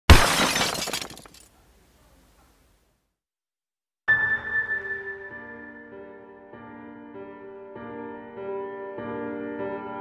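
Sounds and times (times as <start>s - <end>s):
glass shattering: 0.1s - 1.5s
glass pieces tinkling: 0.2s - 1.5s.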